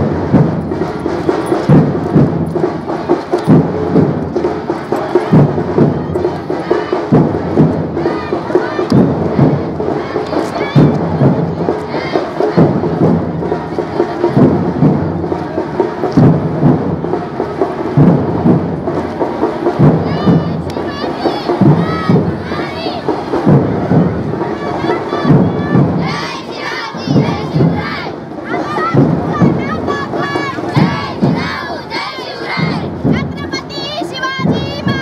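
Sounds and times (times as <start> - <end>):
heavy drum beat: 0.0 - 35.0
loud crowd: 0.0 - 35.0
high shouting voices: 4.9 - 14.5, 19.6 - 35.0.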